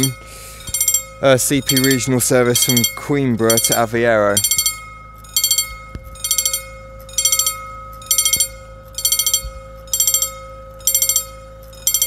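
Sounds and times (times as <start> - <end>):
level crossing bell ringing: 0.0 - 12.0.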